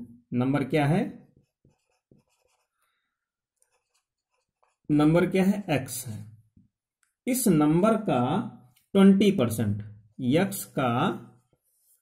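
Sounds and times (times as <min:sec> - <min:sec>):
marker writing on whiteboard: 0:01.1 - 0:02.8, 0:03.4 - 0:05.7.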